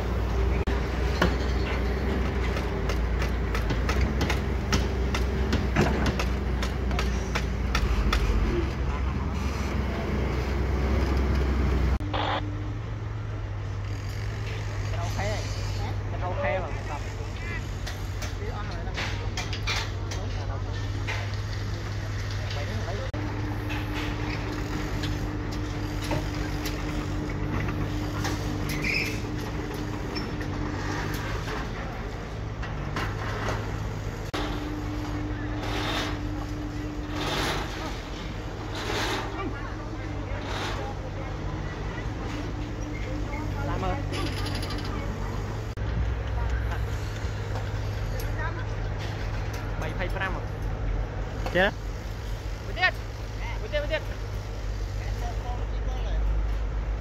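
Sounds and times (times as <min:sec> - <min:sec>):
excavator diesel engine: 0:00.0 - 0:57.0.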